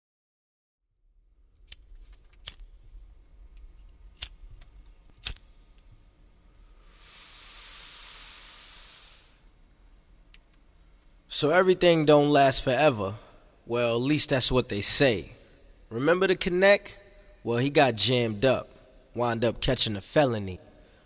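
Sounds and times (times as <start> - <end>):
low hum: 1.0 - 17.6
sharp clicks: 4.2 - 5.4
hiss: 6.8 - 9.5.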